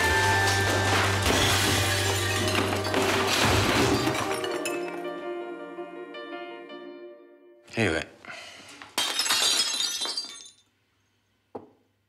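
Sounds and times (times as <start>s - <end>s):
glass breaking: 0.0s - 5.1s, 9.0s - 10.7s.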